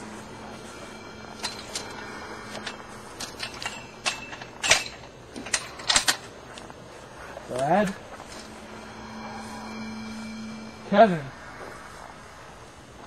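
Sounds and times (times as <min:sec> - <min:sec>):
faint low hum: 0:06.5 - 0:13.0.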